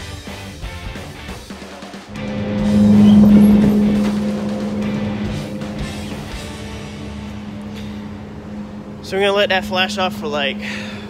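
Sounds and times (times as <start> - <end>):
steady low hum: 2.1 - 11.0.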